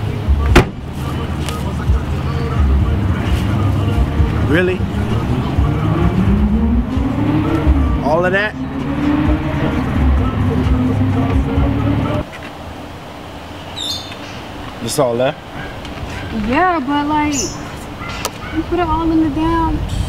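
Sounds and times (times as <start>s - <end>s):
car engine hum: 0.0s - 20.0s
traffic: 0.0s - 20.0s
vehicle passing: 0.0s - 20.0s
car trunk lid slamming: 0.4s - 0.9s.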